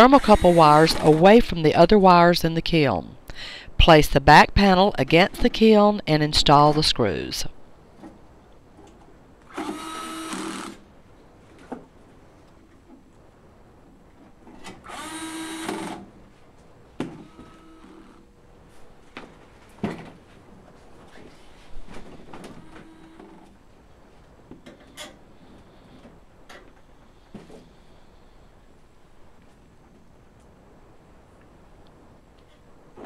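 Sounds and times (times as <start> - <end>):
cordless drill driving screw: 0.1 - 1.2, 9.5 - 10.8, 14.9 - 16.0.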